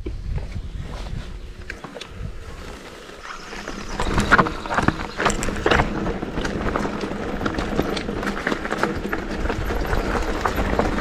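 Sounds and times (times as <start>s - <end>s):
wind buffeting microphone: 0.0s - 11.0s
bike tyres crunching over stones: 0.2s - 11.0s
bike rattling and clicking: 1.1s - 11.0s.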